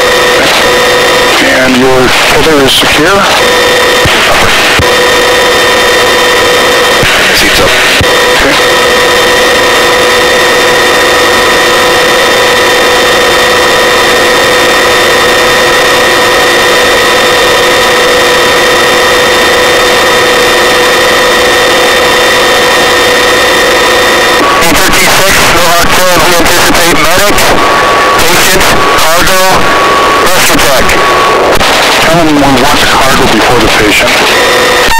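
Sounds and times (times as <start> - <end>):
helicopter drive train whine: 0.0 - 34.9.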